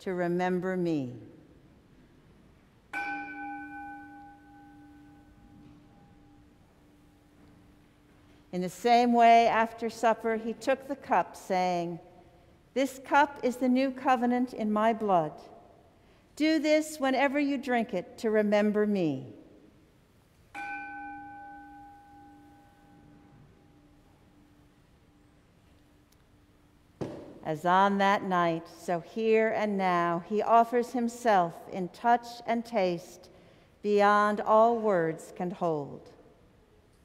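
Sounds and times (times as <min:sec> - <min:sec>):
bell ringing: 0:02.9 - 0:06.5, 0:20.6 - 0:23.5.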